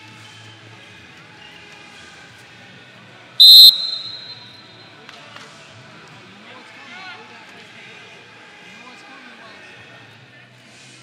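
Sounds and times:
referee whistle blast: 3.4s - 4.7s.

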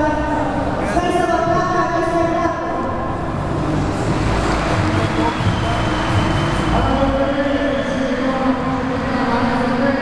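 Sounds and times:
indoor arena crowd rumble: 0.0s - 10.0s.

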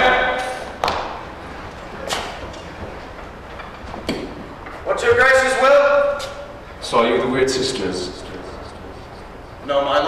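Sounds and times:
sharp knocks with echo: 0.6s - 1.3s.

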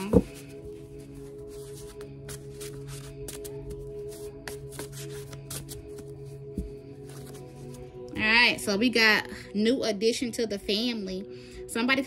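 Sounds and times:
cards being shuffled: 0.0s - 7.9s
ambient music with drone: 0.0s - 12.0s.

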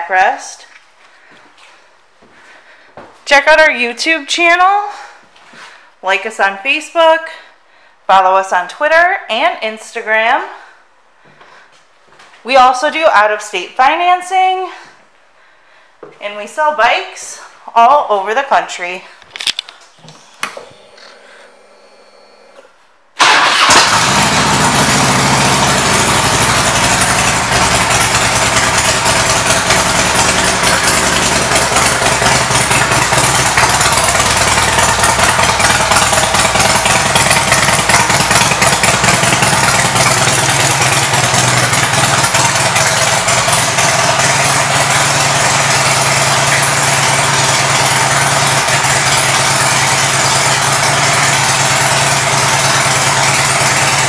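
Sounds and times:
motorcycle engine starting and idling: 19.1s - 54.0s.

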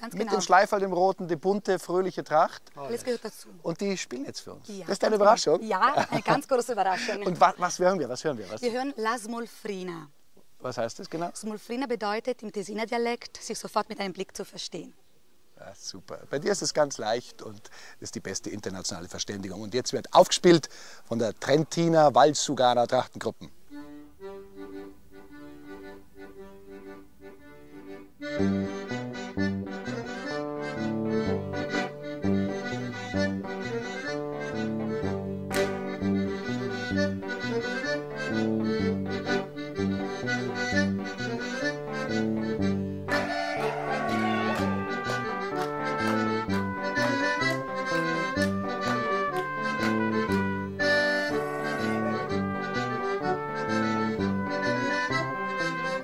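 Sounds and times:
folk dance tune on accordion: 0.0s - 2.1s, 4.9s - 9.7s, 23.7s - 56.0s
band with bass and beat: 41.7s - 56.0s.

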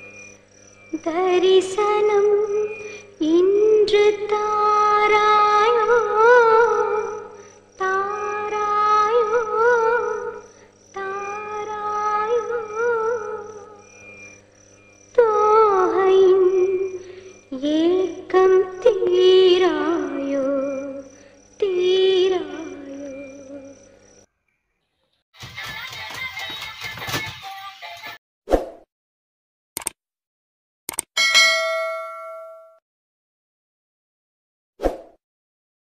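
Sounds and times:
quick double clicks: 29.8s - 30.0s, 30.9s - 31.2s
notification bell ding: 31.2s - 32.8s.

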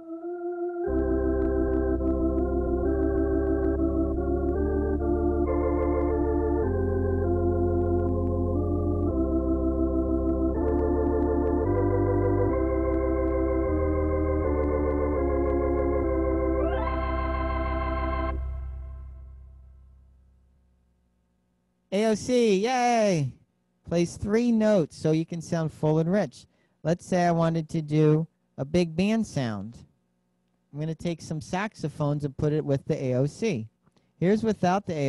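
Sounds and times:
electronic organ melody with chords: 0.0s - 20.2s
low bass notes: 0.8s - 20.9s.

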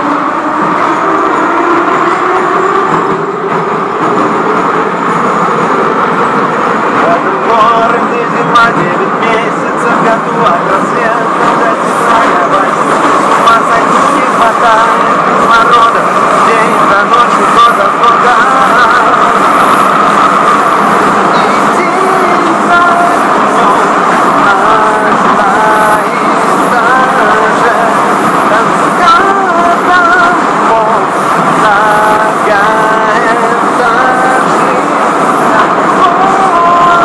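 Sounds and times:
subway train rumble: 0.0s - 37.0s
man singing: 6.8s - 19.8s, 20.9s - 37.0s.

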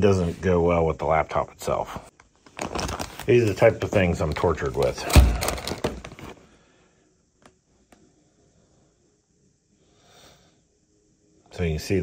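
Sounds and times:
plastic bag crinkling: 2.3s - 6.4s.

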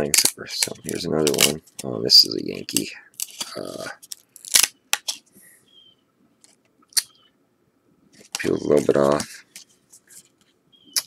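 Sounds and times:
cardboard cards clicking and snapping: 0.0s - 2.0s, 2.6s - 5.2s.

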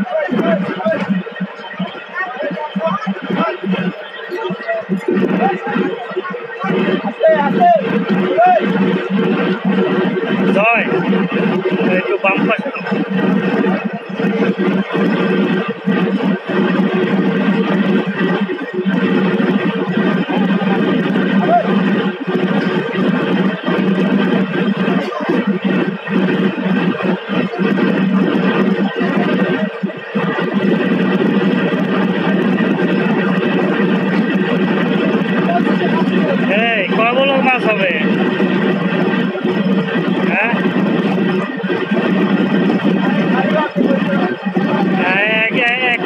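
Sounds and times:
boat engine and machinery drone: 0.0s - 46.0s.

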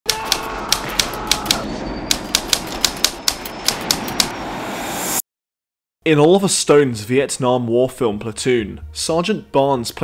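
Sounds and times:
typewriter keys clacking: 0.1s - 4.3s.

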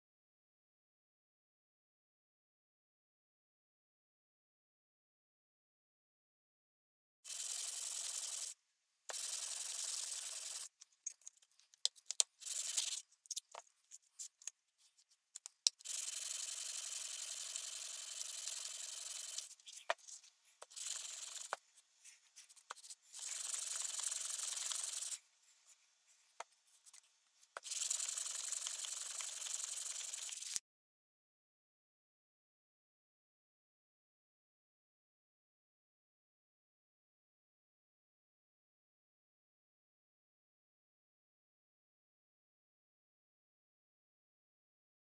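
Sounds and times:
blade rubbing on sandpaper: 7.3s - 10.8s, 12.2s - 13.6s, 15.8s - 25.2s, 27.6s - 30.6s.

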